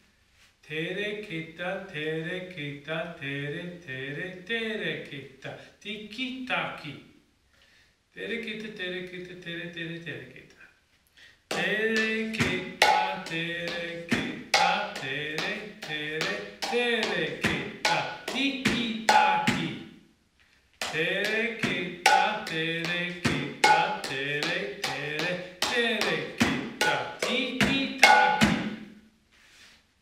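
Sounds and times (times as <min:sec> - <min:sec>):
barrel drum played by hand: 0:11.5 - 0:19.8, 0:20.8 - 0:28.8
voice chanting: 0:11.5 - 0:20.0, 0:20.8 - 0:28.9.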